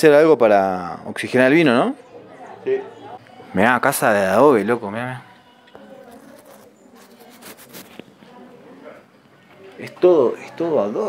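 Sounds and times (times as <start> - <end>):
faint voices: 0.9 - 11.0.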